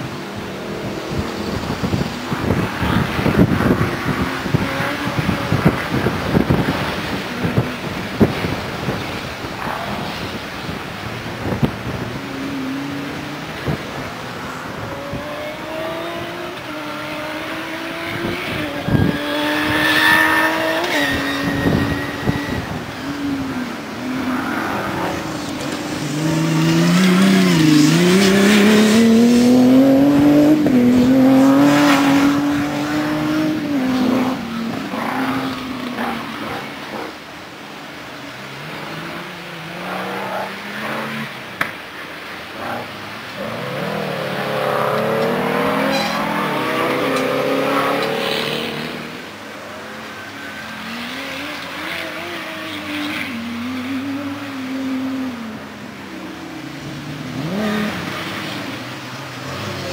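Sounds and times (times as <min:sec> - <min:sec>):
race car engine accelerating: 0:24.3 - 0:36.8.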